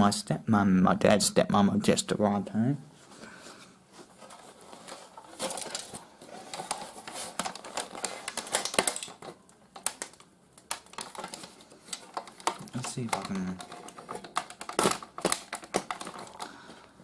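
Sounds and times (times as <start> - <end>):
metal and plastic parts rattling: 4.2 - 16.6.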